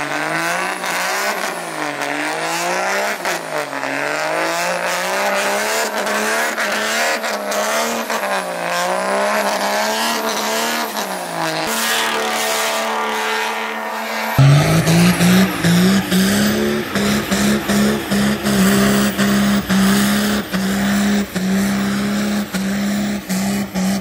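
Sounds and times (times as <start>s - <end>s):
diesel engine revving: 11.7s - 24.0s.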